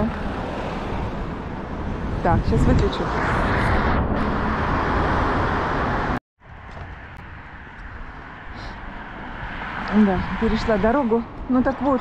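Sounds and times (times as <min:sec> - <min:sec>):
distant traffic: 0:00.0 - 0:12.0
car passing close by: 0:02.0 - 0:06.2.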